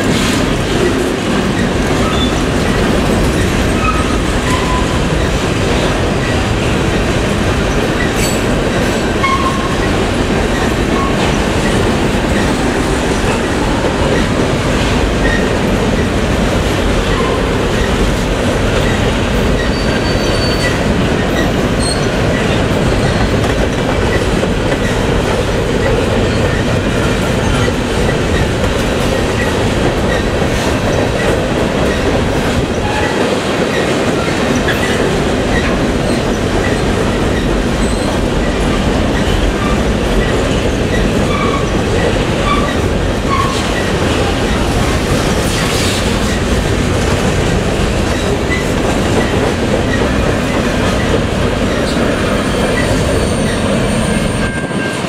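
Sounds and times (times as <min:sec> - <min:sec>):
clickety-clack over rail joints: 0:00.0 - 0:55.0
train wheels rumbling on rails: 0:00.0 - 0:55.0
wheel squeals: 0:19.6 - 0:20.8.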